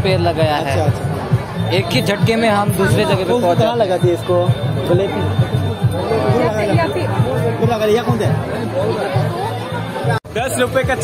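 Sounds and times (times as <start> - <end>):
background music: 0.0 - 11.0
voices chattering: 0.0 - 11.0.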